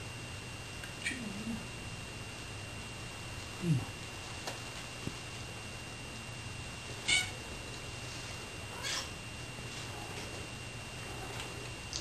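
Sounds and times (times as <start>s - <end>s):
cat meowing: 7.1s - 7.4s, 8.8s - 9.1s.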